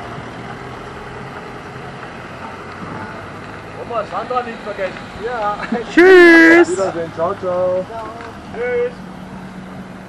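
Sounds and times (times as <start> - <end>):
car engines at low revs: 0.0 - 10.0.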